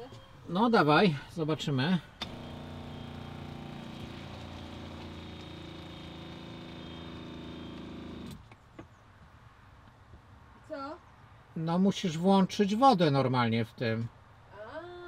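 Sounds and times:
water pump motor hum: 0:02.2 - 0:08.4.

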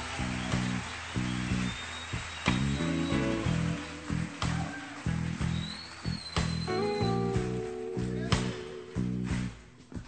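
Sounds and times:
live rock band playing: 0:02.5 - 0:10.0.

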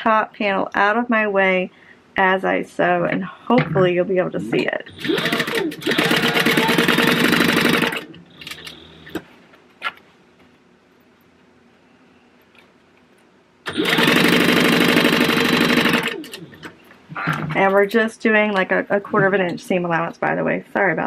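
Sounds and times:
sewing machine stitching: 0:04.9 - 0:09.2, 0:13.7 - 0:16.8.

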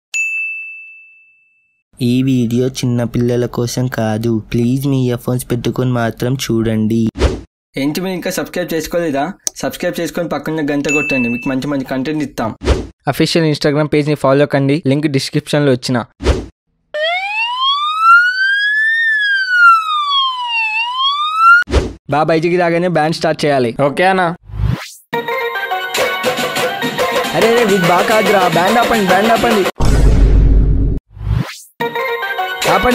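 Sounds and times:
bright high-pitched ding: 0:00.2 - 0:01.7, 0:10.9 - 0:11.7
siren wailing: 0:17.0 - 0:21.7.

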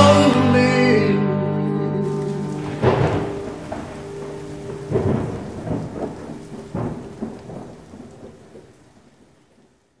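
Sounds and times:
steady rain: 0:02.0 - 0:10.0
thunder rumbling: 0:02.1 - 0:10.0.

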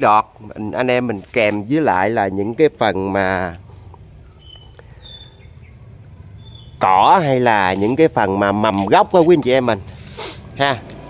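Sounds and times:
man talking: 0:00.0 - 0:03.7, 0:06.8 - 0:09.9, 0:10.6 - 0:10.9
faint high-pitched chirps: 0:03.6 - 0:07.2.

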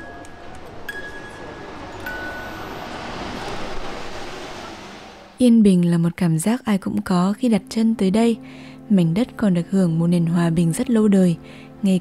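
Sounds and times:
faint held tone: 0:00.9 - 0:03.0
river rushing: 0:01.6 - 0:05.4.

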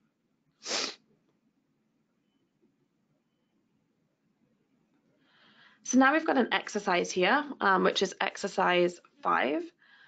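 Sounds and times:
person sharp breath noise: 0:00.6 - 0:01.0, 0:05.2 - 0:05.9.

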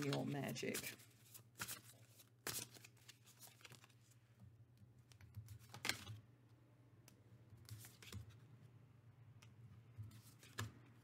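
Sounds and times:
card shuffling: 0:00.0 - 0:04.2.

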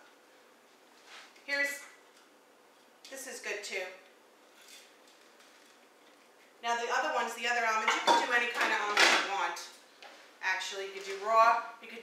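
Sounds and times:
faint soft rustle: 0:00.6 - 0:01.5.

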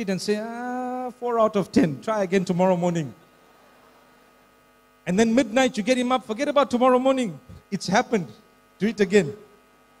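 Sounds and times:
man speaking: 0:00.0 - 0:03.2, 0:05.0 - 0:09.6
electrical mains hum: 0:00.0 - 0:10.0.

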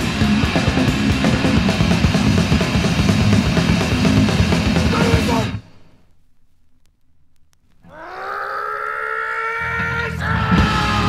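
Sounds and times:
punk music: 0:00.0 - 0:05.9, 0:09.8 - 0:11.0.

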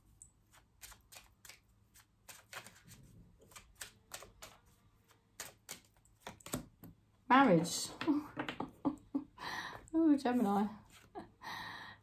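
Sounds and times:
cards being shuffled: 0:00.5 - 0:06.9.

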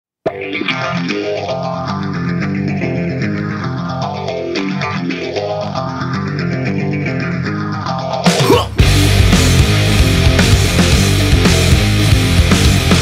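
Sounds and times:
bass guitar: 0:00.2 - 0:13.0
rock guitar riff: 0:00.2 - 0:13.0.

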